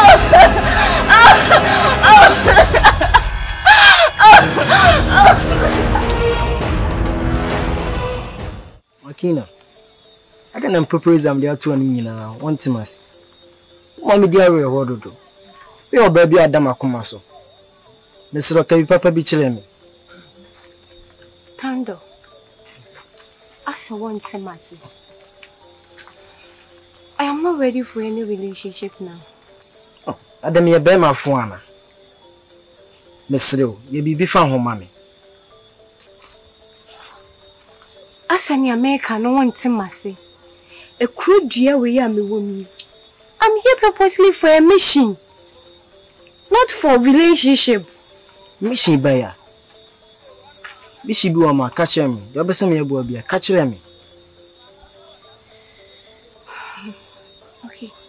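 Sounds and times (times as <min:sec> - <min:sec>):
crickets chirping: 0:00.0 - 0:06.1, 0:08.8 - 0:58.0
soft music of held notes: 0:08.9 - 0:58.0.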